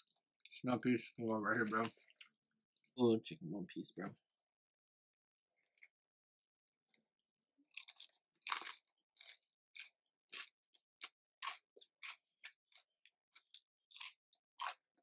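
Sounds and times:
person chewing crispy food: 0.0s - 0.8s, 1.5s - 2.9s, 5.6s - 6.0s, 7.6s - 15.0s.

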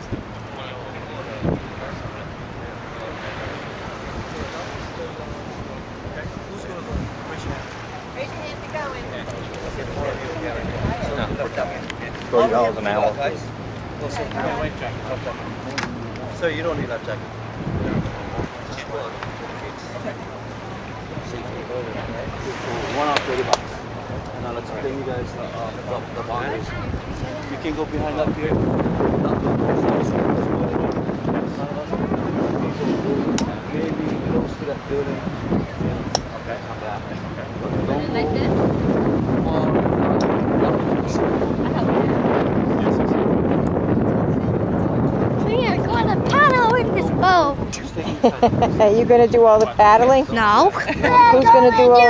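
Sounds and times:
people talking: 0.0s - 52.0s
surf: 0.0s - 52.0s
wind: 0.0s - 52.0s
child's high voice: 45.5s - 47.6s, 51.0s - 52.0s.

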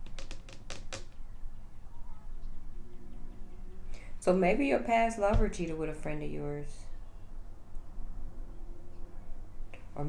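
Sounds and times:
low steady hum: 1.0s - 10.0s.

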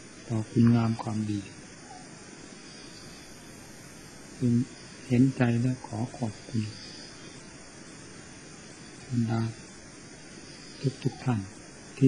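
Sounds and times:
recording hiss: 0.0s - 12.0s
man speaking: 0.3s - 1.6s, 4.4s - 6.8s, 9.1s - 9.6s, 10.8s - 11.6s.

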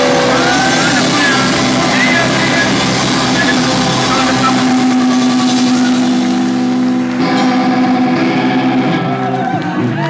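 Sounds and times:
distorted electric guitars ringing chord: 0.0s - 9.5s.

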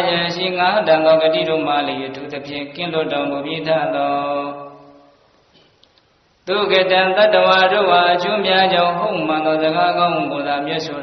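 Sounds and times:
man chanting: 0.0s - 5.0s, 6.5s - 11.0s.

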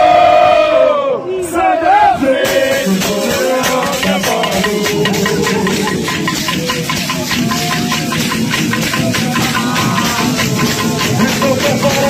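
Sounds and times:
crowd voices: 0.0s - 12.0s
steady drumming: 2.3s - 12.0s
wooden clappers clacking: 2.5s - 12.0s.

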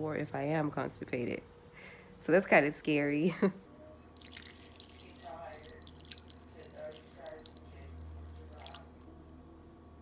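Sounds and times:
broth trickling into a bowl: 4.1s - 10.0s.

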